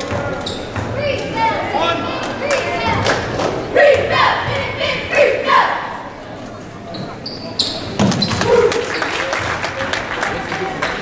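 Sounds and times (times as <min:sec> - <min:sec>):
crowd voices: 0:00.0 - 0:11.0
sneaker squeaks on gym floor: 0:00.1 - 0:01.0, 0:06.9 - 0:08.5.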